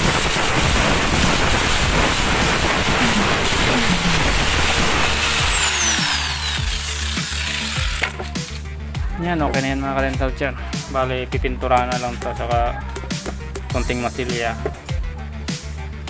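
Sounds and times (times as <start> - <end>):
angle grinder whining: 0.0 - 8.7.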